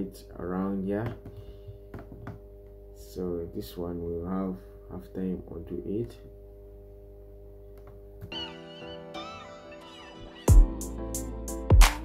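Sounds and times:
low background hum: 0:00.0 - 0:08.4.

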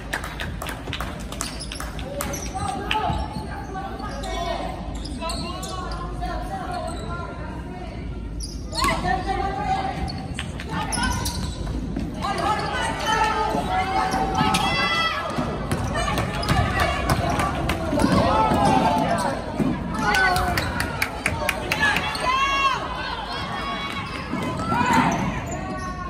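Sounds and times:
voices in large gym: 0:00.0 - 0:26.0.

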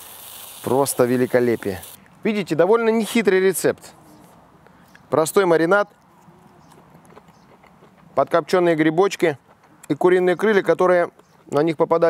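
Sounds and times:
man chewing with mouth clicks: 0:05.9 - 0:08.2.

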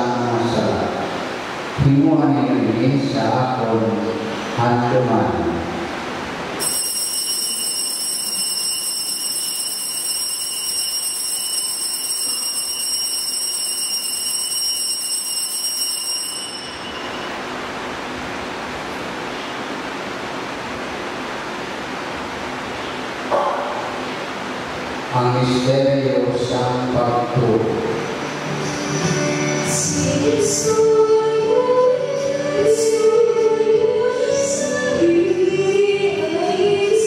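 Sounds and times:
altar bell ringing: 0:06.6 - 0:17.5.

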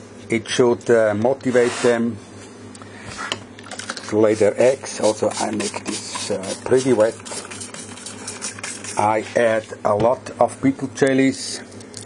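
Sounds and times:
spray bottle spraying water: 0:05.0 - 0:09.1.

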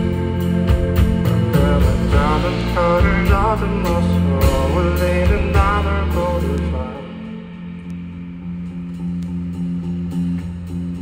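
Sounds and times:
band playing soft instrumental: 0:00.0 - 0:11.0.

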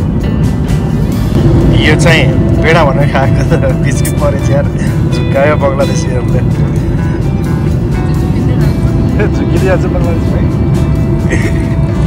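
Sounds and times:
airplane cabin engine rumble: 0:00.0 - 0:12.0.

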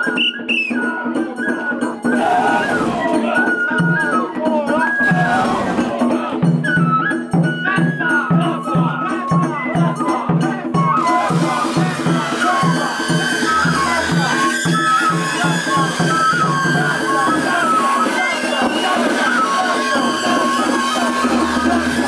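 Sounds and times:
crowd voices: 0:00.0 - 0:22.0
high flute-like melody: 0:00.0 - 0:22.0
steady drumbeat: 0:02.0 - 0:22.0.

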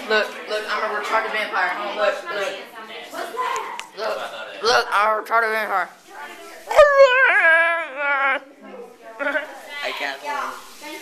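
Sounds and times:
broken vocal sounds: 0:06.7 - 0:08.5
person whining cry: 0:06.7 - 0:08.5.

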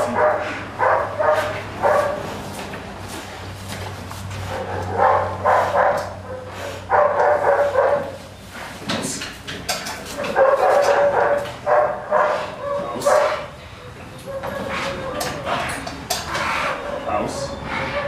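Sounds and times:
dog barking: 0:00.0 - 0:02.3, 0:04.5 - 0:08.2, 0:10.2 - 0:13.6, 0:14.2 - 0:15.3.

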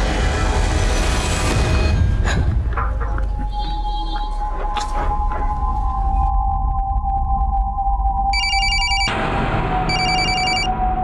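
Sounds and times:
mobile phone ringing: 0:08.4 - 0:09.2, 0:09.9 - 0:10.7.

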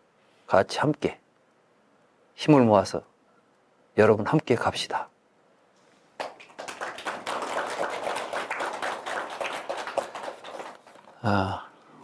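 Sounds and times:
audience applauding: 0:06.2 - 0:11.2.

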